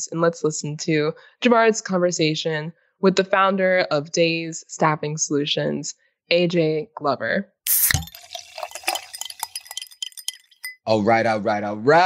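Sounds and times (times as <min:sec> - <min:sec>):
light glassy clinks and ticks: 0:08.4 - 0:10.9.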